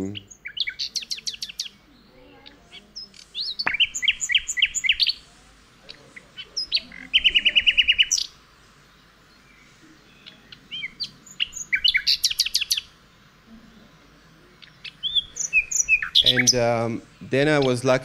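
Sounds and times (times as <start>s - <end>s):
recorded birdsong chirps and trills: 0.0s - 18.0s.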